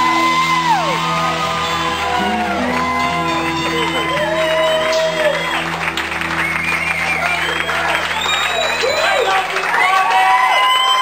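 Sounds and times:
crowd applauding: 0.0s - 11.0s
crowd calling out: 0.0s - 11.0s
band chord ringing: 1.2s - 8.3s.

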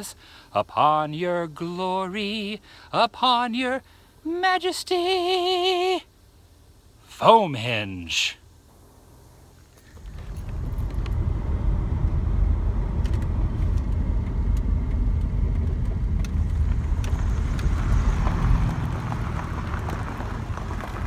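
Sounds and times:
van road and engine rumble: 0.0s - 21.0s.

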